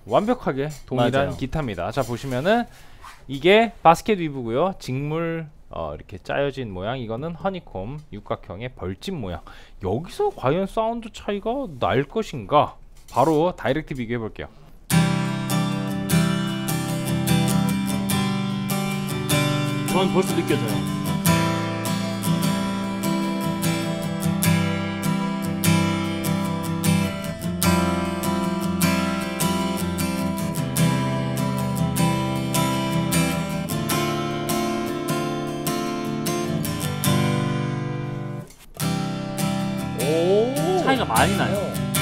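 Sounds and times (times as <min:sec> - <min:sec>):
acoustic guitar strummed chords: 0:14.9 - 0:42.0.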